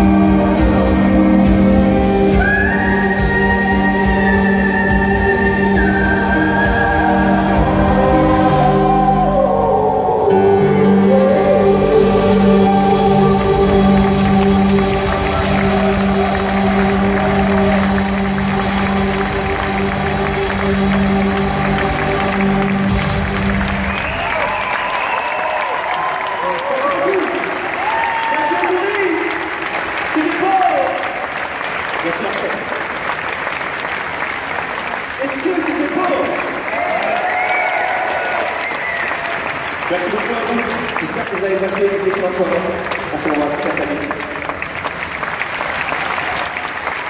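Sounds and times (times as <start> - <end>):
orchestra and choir chord: 3.1 - 24.2
audience applause: 13.4 - 47.0
audience cheering: 13.9 - 47.0.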